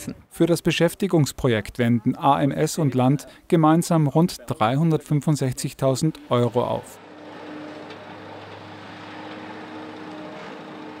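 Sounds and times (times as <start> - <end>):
excavator diesel engine running: 6.3 - 11.0.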